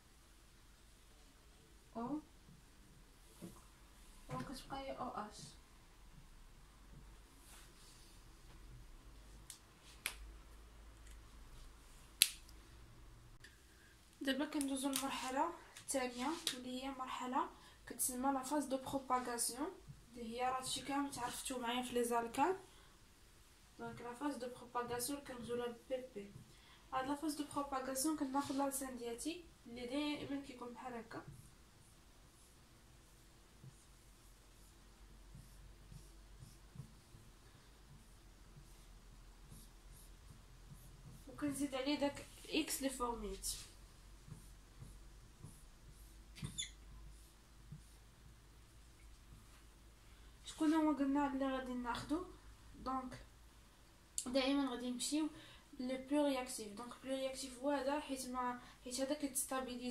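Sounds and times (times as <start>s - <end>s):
faint room hum: 0.0s - 59.9s
marker squeaking on whiteboard: 35.3s - 37.3s, 44.3s - 48.0s.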